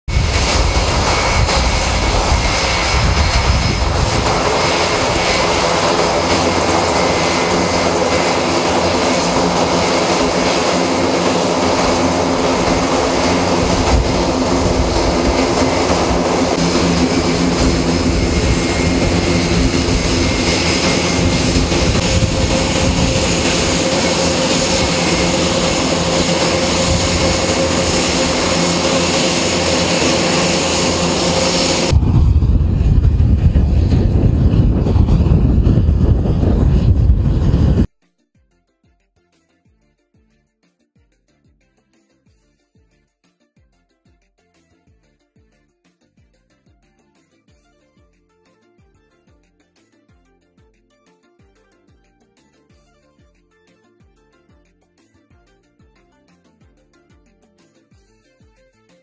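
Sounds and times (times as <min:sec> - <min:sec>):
turboprop engines droning: 0:00.0 - 0:37.9
engine hiss: 0:00.1 - 0:37.9.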